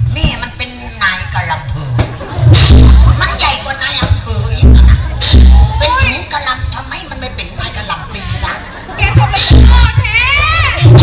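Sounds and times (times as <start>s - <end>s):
deep thuds: 1.9s - 3.2s, 3.9s - 6.1s
high-pitched voice shouting: 9.0s - 11.0s.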